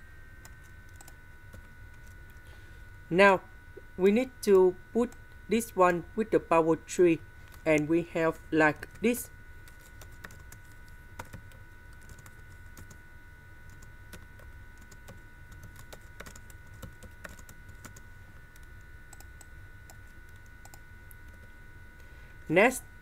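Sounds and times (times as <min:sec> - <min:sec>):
steady low hum: 0:00.0 - 0:23.0
computer keyboard typing: 0:00.4 - 0:02.4, 0:08.8 - 0:13.0, 0:13.7 - 0:21.4.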